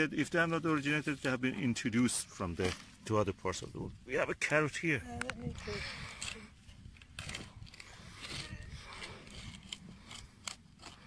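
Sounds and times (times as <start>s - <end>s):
garden fork crunching soil: 7.0s - 11.0s.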